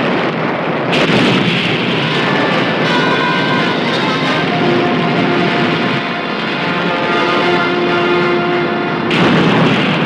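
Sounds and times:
loud steady roaring noise: 0:00.0 - 0:10.0.

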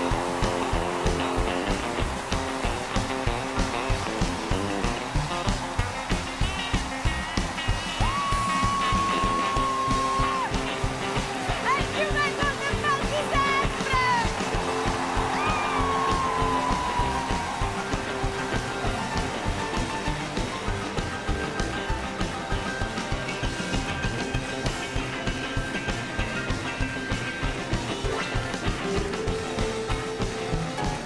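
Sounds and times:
double bass: 0:00.0 - 0:08.0
boogie-woogie piano: 0:00.0 - 0:31.0.

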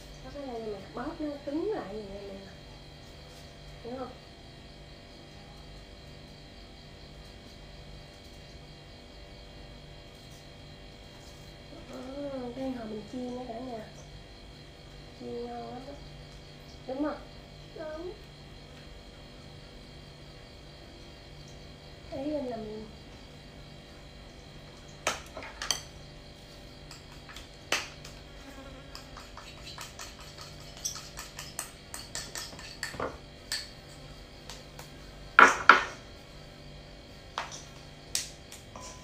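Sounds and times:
faint steady hum: 0:00.0 - 0:39.0
ceramic bowl clinking on steel bowl: 0:28.9 - 0:33.7.

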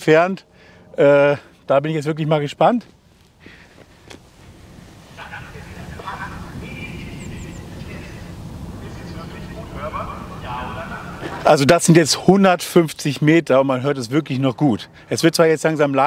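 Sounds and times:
wind rumbling on microphone: 0:03.0 - 0:11.8
man announcing over loudspeaker: 0:05.2 - 0:07.5, 0:08.8 - 0:16.0.

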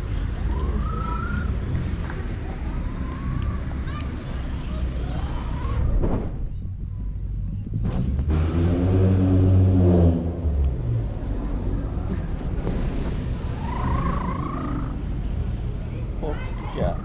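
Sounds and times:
vehicle engine passing: 0:07.8 - 0:16.2.

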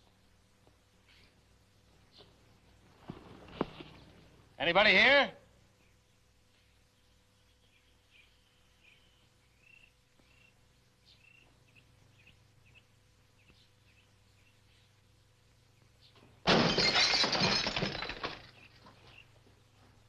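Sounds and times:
faint bird chirps: 0:05.7 - 0:15.0
glass window shattering: 0:16.5 - 0:18.7.

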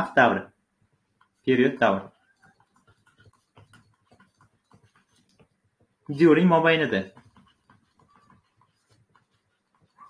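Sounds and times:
stylus ticking while writing: 0:00.9 - 0:10.0.

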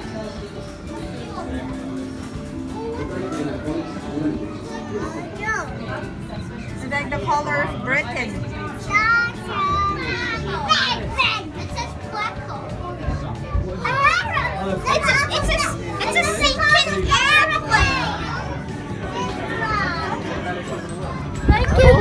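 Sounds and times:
children chattering: 0:00.0 - 0:22.0
music: 0:00.0 - 0:22.0.

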